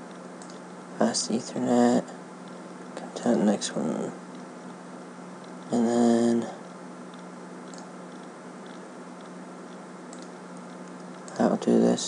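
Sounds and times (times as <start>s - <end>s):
low electrical hum and hiss: 0.0s - 12.0s
computer mouse clicks: 0.4s - 0.6s, 7.1s - 11.4s.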